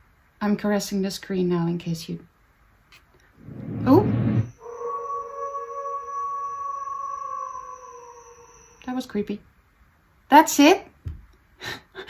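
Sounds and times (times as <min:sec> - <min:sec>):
sustained drone of steady tones: 0:03.4 - 0:09.2.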